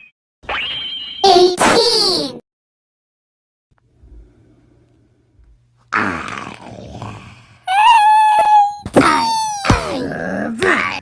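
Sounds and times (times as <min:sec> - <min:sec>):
high-pitched cartoon voice wailing: 0:07.7 - 0:11.0.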